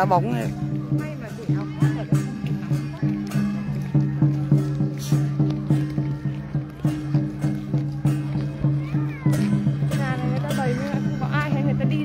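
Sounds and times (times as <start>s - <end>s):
steady drum beat: 0.0s - 12.0s.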